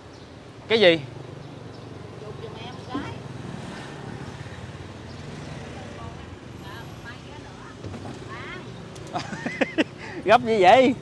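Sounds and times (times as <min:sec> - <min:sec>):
motorbike engines: 0:00.0 - 0:11.0
street traffic hum: 0:00.0 - 0:11.0
faint voices talking: 0:05.3 - 0:09.0.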